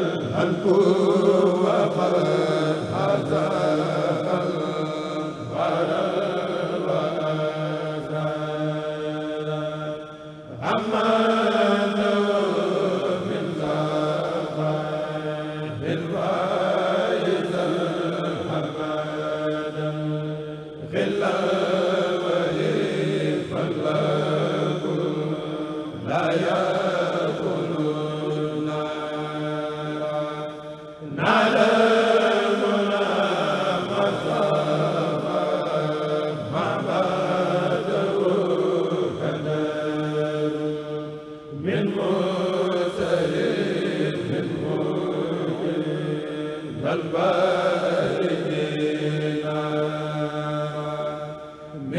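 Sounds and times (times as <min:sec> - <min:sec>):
men chanting unaccompanied: 0:00.0 - 0:51.9.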